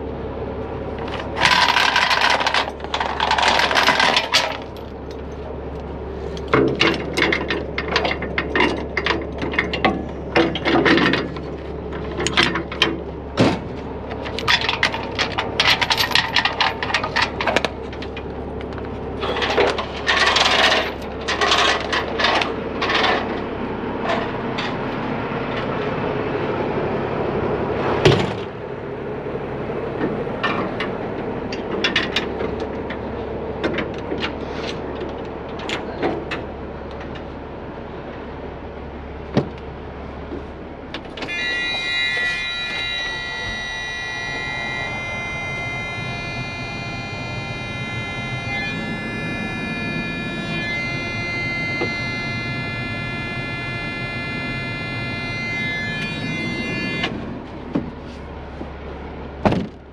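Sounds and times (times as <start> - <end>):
truck engine hum: 0.0 - 59.9
metal clanks and knocks: 6.4 - 18.2
high electronic warning tone: 41.2 - 57.3.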